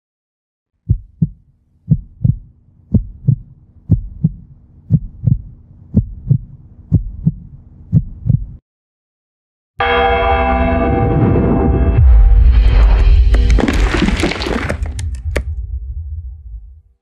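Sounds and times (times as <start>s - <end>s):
heartbeat thumps: 0.8s - 8.6s.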